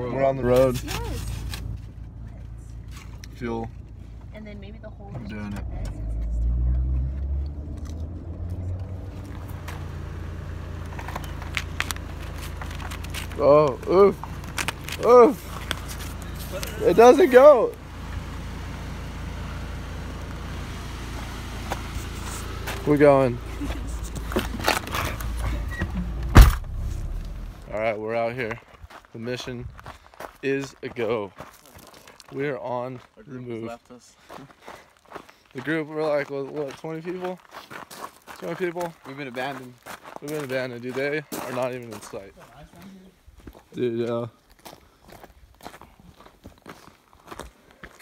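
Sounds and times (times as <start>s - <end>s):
footsteps crunching on stones: 7.2s - 17.4s, 20.2s - 48.0s
steady low rumble: 17.7s - 28.1s
truck door slamming: 24.6s - 27.4s.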